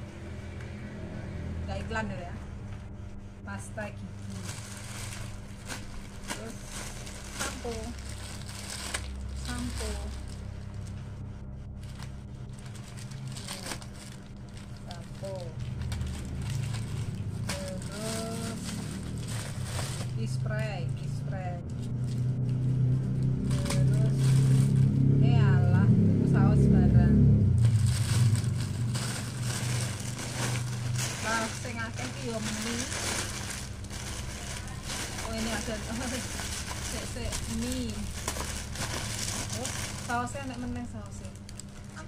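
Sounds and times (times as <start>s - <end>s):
steady low hum: 0.0s - 42.0s
plastic bag rustling: 4.2s - 11.0s, 11.8s - 20.8s, 21.7s - 25.2s, 27.5s - 42.0s
plastic packaging crinkling: 4.2s - 11.0s, 11.7s - 20.8s, 21.7s - 25.0s, 27.6s - 42.0s.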